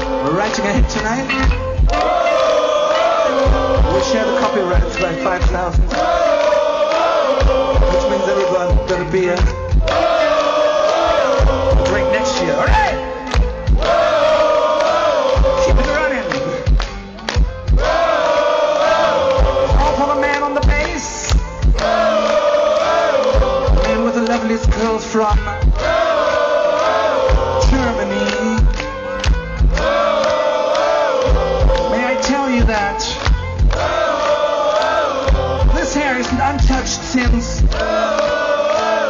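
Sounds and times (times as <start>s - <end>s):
crowd: 0.0s - 39.0s
drum beats: 0.0s - 39.0s
heavy metal band playing: 0.0s - 39.0s.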